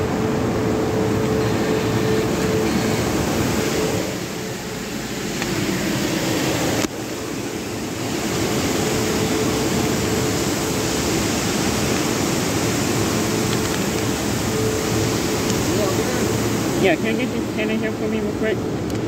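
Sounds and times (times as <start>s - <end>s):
faint steady hum: 0.0s - 19.0s
steady rushing noise: 0.0s - 19.0s.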